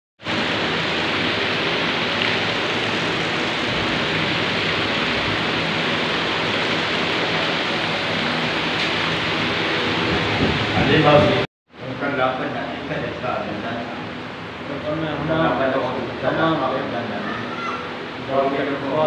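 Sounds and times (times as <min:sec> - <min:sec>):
heavy rain falling: 0:00.3 - 0:11.5.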